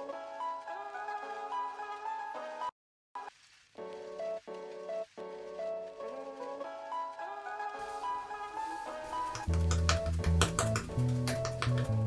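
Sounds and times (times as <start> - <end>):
background music with bass: 8.6 - 12.0
makeup sponge tapping: 9.2 - 12.0.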